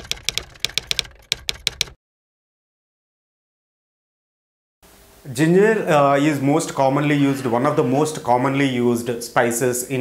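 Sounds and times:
keyboard key clicks: 0:00.0 - 0:02.0.

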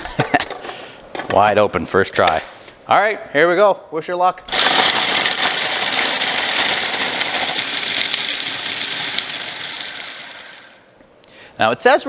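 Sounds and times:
food processor running: 0:04.5 - 0:10.9.

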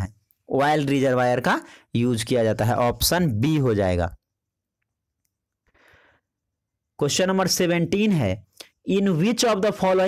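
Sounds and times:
man's voice: 0:00.0 - 0:04.2, 0:07.0 - 0:10.0
faint intake of breath: 0:05.7 - 0:06.3.

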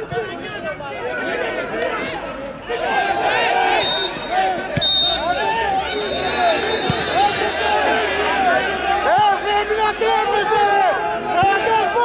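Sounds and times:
people shouting: 0:01.0 - 0:12.0
referee's whistle blast: 0:03.7 - 0:07.7.

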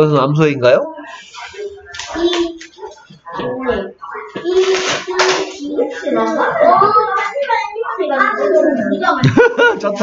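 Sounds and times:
people laughing: 0:08.9 - 0:10.0.

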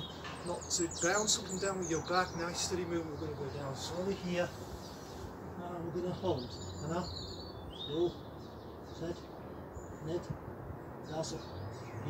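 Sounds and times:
birds chirping and whistling: 0:00.0 - 0:10.4.

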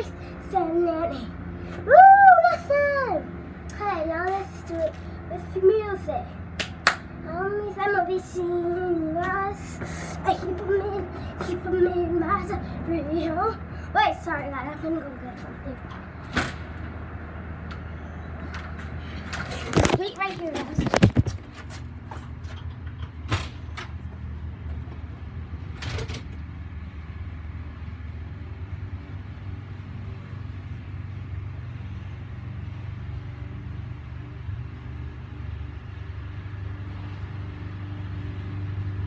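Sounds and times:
child singing unaccompanied: 0:00.0 - 0:06.3, 0:07.2 - 0:15.8, 0:19.7 - 0:21.1
low mechanical hum: 0:00.0 - 0:39.0.

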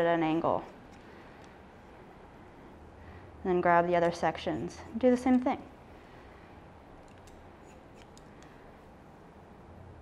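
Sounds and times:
shears snipping hair: 0:07.0 - 0:08.6.

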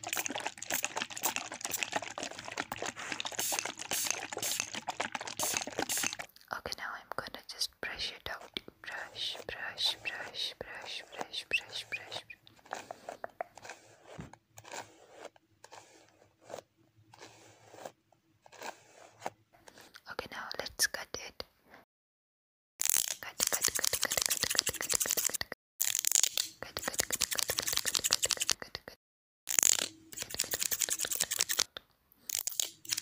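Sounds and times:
person whispering: 0:05.4 - 0:13.6, 0:20.0 - 0:21.5, 0:23.2 - 0:25.6, 0:26.6 - 0:29.0.

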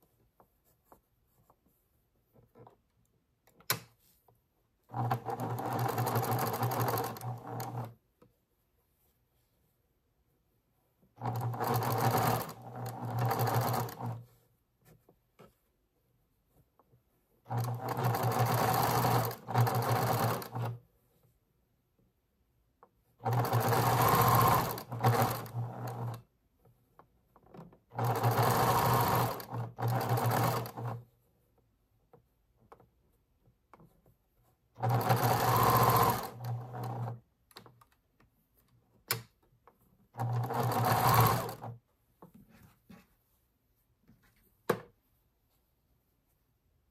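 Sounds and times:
electric sewing machine stitching: 0:04.9 - 0:08.0, 0:11.2 - 0:14.2, 0:17.5 - 0:20.8, 0:23.2 - 0:26.3, 0:27.9 - 0:31.1, 0:34.8 - 0:37.2, 0:40.2 - 0:41.8.

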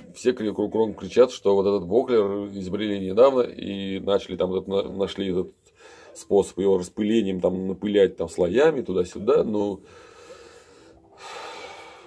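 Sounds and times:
man breathing into microphone: 0:05.7 - 0:06.2, 0:09.8 - 0:12.0.

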